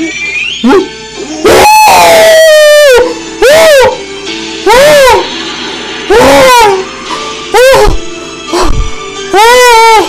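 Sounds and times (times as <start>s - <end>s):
background music: 0.0s - 10.0s
man howling: 7.5s - 10.0s.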